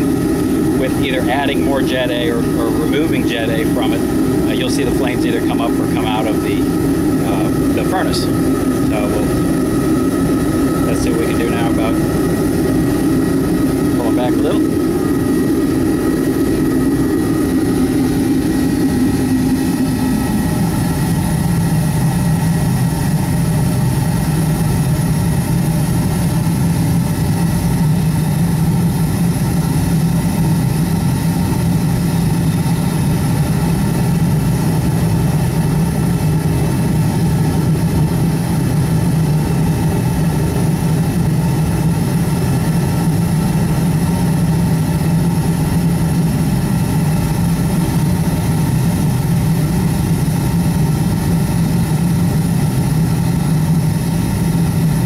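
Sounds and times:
furnace burner roaring: 0.0s - 55.0s.

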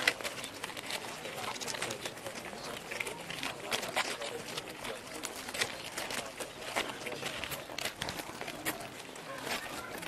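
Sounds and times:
murmur of voices: 0.0s - 10.0s
shoes scuffing on paving stones: 3.0s - 10.0s.

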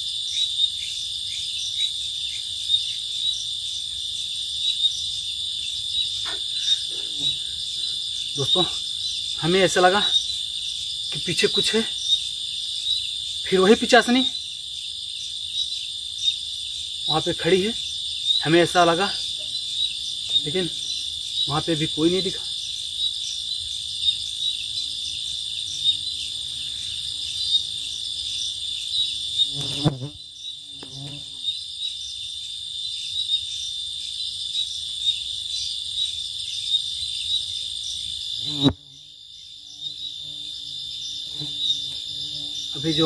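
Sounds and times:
crickets chirping: 0.0s - 43.0s.

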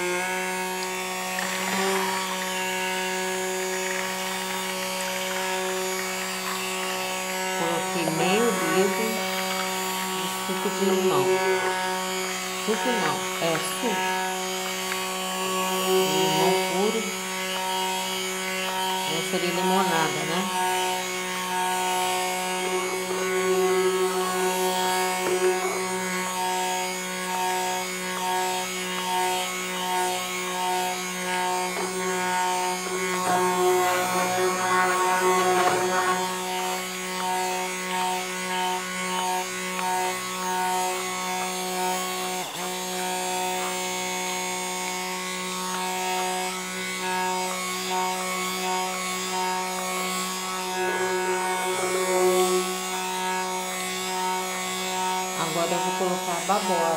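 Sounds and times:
stick blender motor hum: 0.0s - 56.9s.

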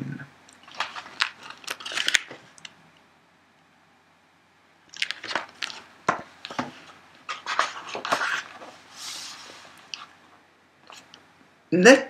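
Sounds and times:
paper rustling: 0.6s - 2.8s, 4.9s - 11.2s.

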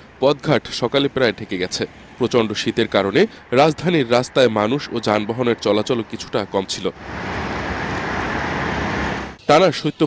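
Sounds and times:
cars passing: 0.0s - 9.4s
motorcycles passing: 1.6s - 9.4s.

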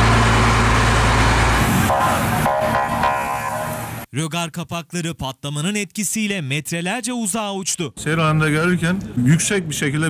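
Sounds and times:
rough rumbling street noise: 0.0s - 4.1s
high-pitched tone: 1.9s - 4.1s.

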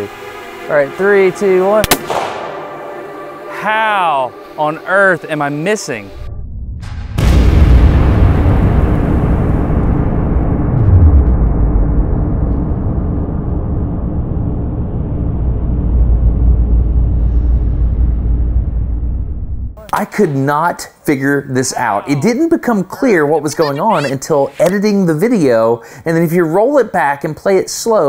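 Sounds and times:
low musical drone: 0.0s - 6.3s
slowed pistol shot boom: 1.8s - 2.8s
deep rumble: 6.2s - 19.8s.

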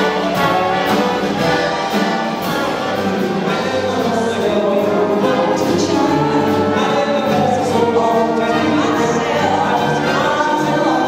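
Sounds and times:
big dance band playing: 0.0s - 11.0s
man singing: 3.4s - 11.0s.

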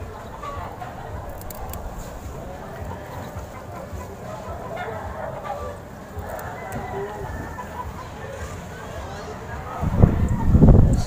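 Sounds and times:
chickens clucking: 0.0s - 11.0s
low rumble on microphone: 9.8s - 11.0s.

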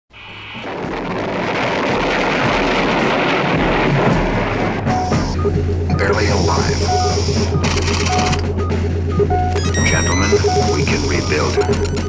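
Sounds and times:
dense rumbling wash of noise: 0.1s - 9.2s.

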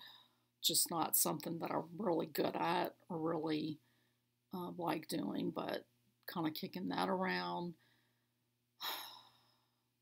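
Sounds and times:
woman sighing: 8.8s - 9.4s.

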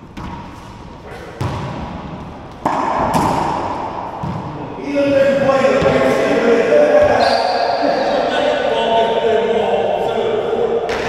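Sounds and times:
ball hitting hard walls: 0.0s - 6.3s
racquet hitting ball: 0.0s - 6.3s.

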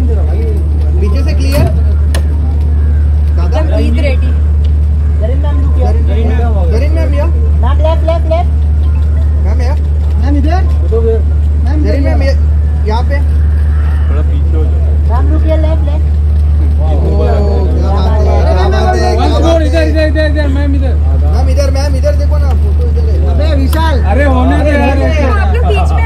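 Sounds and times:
people talking and calling out: 0.0s - 26.0s
vehicle engine idling: 0.0s - 26.0s.

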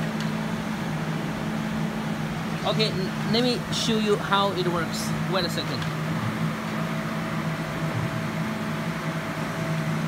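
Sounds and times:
machinery fan hiss: 0.0s - 10.0s
steady low hum: 0.0s - 10.0s.

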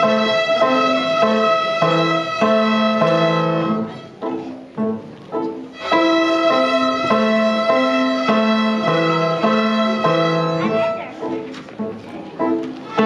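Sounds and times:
violins playing a simple tune: 0.0s - 13.0s.

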